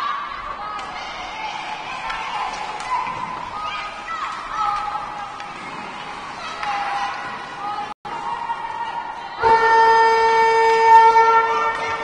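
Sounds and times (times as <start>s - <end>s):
ice rink horn blast: 9.4s - 12.0s.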